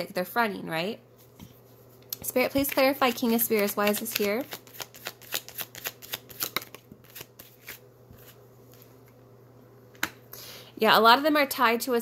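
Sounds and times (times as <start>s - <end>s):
cards being shuffled: 2.2s - 8.9s.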